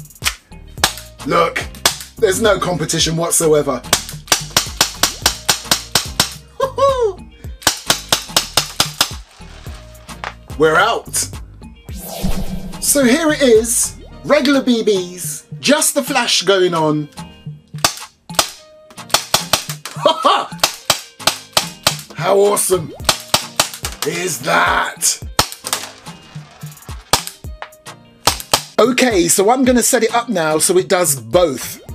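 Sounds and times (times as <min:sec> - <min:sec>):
background music: 0:00.0 - 0:31.9
airsoft pistol firing rapid shots: 0:04.0 - 0:06.4, 0:07.6 - 0:09.2, 0:17.8 - 0:19.7, 0:20.6 - 0:22.1, 0:23.1 - 0:23.9, 0:25.4 - 0:25.8, 0:28.3 - 0:28.8
airsoft pistol shots: 0:07.6 - 0:09.2, 0:20.6 - 0:22.1, 0:28.2 - 0:28.8.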